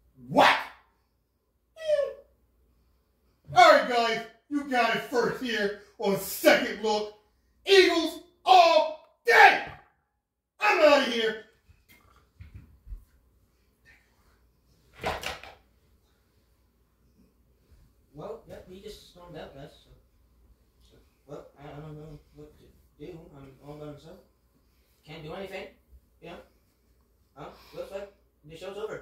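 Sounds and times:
high-pitched yelps: 0.2s - 0.9s, 1.8s - 2.3s, 7.8s - 9.9s.

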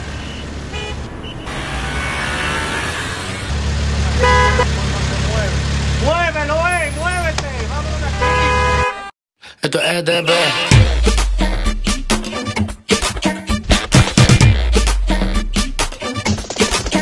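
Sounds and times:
car horn honk: 0.2s - 2.8s, 4.2s - 4.7s, 7.9s - 9.1s.

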